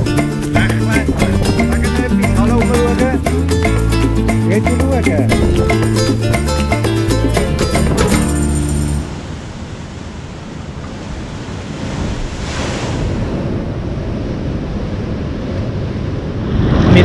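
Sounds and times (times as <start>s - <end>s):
wave breaking: 0.0s - 17.0s
waves surging into sea cave: 0.0s - 17.0s.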